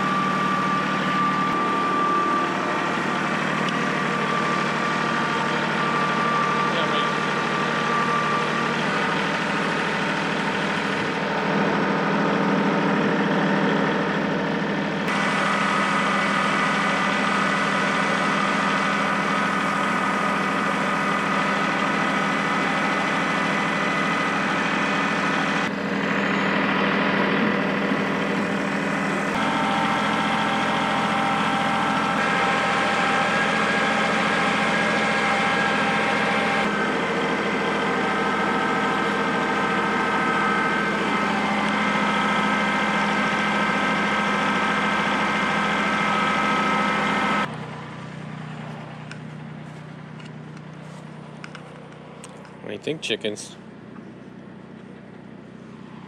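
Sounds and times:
tractor engine running: 0.0s - 56.0s.

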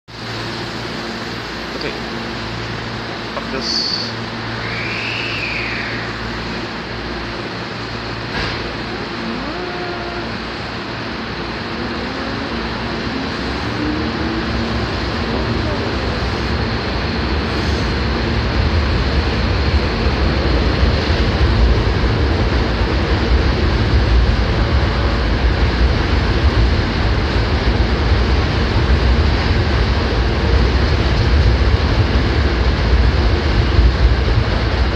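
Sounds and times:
electric train rumbling past: 0.1s - 34.9s.

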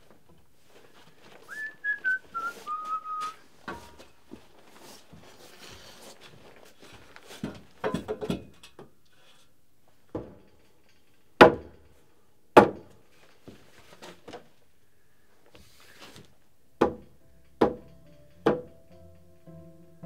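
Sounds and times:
person whistling a tune: 1.5s - 3.4s
timber knocks: 11.4s - 11.8s, 16.8s - 18.9s.

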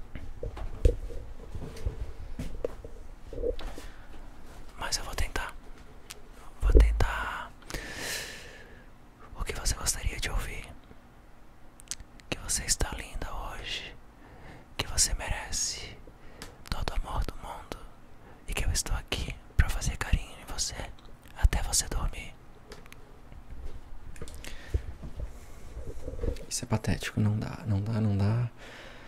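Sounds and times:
man whispering: 4.7s - 5.6s, 6.4s - 7.6s, 9.2s - 10.8s, 11.9s - 14.0s, 14.8s - 16.0s, 16.6s - 22.4s, 25.9s - 28.6s.

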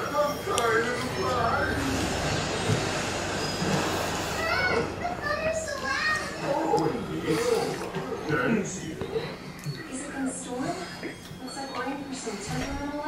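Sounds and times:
children talking and playing: 0.0s - 13.0s.

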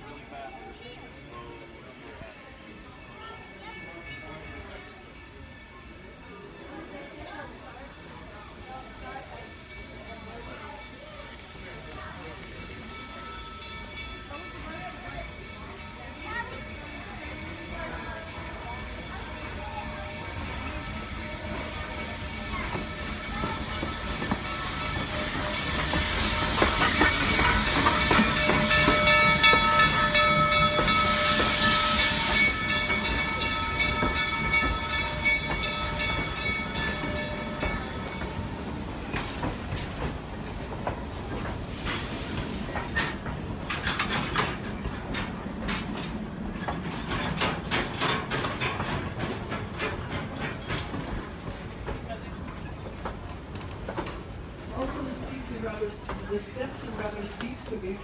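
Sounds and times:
steam hissing: 14.6s - 44.7s.

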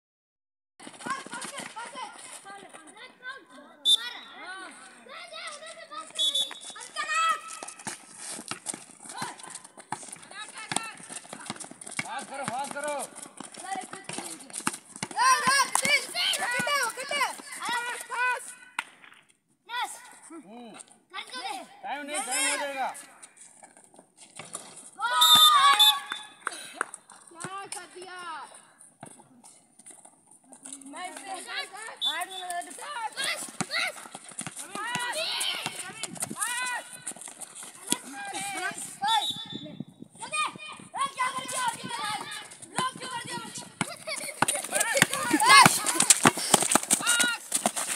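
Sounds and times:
feet hitting concrete: 0.8s - 3.2s, 4.7s - 19.0s, 29.0s - 39.4s, 40.3s - 47.9s
basketball bouncing on concrete: 7.8s - 18.0s, 33.2s - 38.6s, 41.0s - 47.9s
children calling out: 41.0s - 46.4s
children shouting: 44.1s - 46.3s.

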